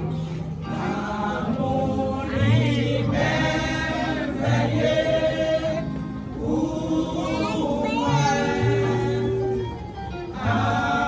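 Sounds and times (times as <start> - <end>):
women's choir singing a hymn: 0.0 - 11.0.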